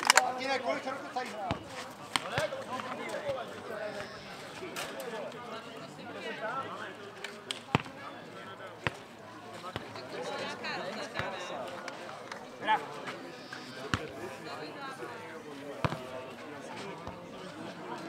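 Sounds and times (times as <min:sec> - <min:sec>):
spectators talking: 0:00.0 - 0:18.0
ball thudding on clay court: 0:15.8 - 0:16.0.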